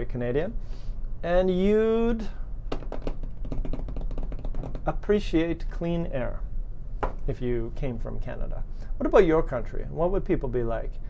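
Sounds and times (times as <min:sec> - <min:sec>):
typing on computer keyboard: 0:02.7 - 0:04.9.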